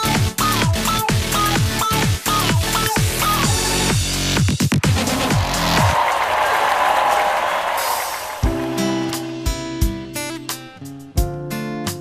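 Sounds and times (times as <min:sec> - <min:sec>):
audience applause: 0:04.8 - 0:09.5.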